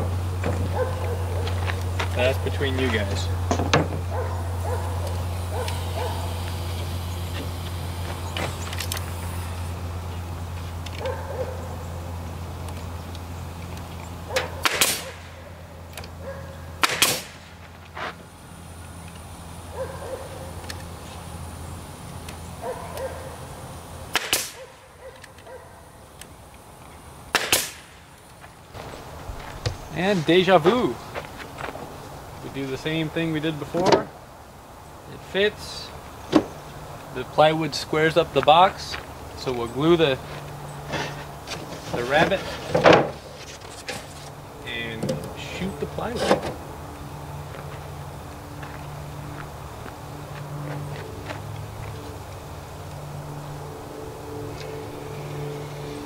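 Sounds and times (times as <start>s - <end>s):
steady low hum: 0.0s - 56.0s
nail gun firing into wood: 14.6s - 15.2s, 16.8s - 17.5s, 24.1s - 24.6s, 27.3s - 27.9s.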